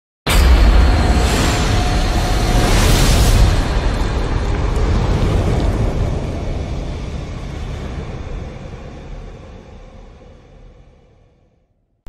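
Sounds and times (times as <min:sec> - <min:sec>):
boom: 0:00.3 - 0:08.4
deep noisy rumble: 0:00.3 - 0:11.6.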